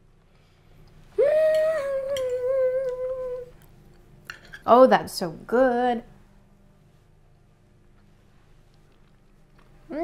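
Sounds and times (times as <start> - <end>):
woman humming with mouth full: 1.1 - 3.6.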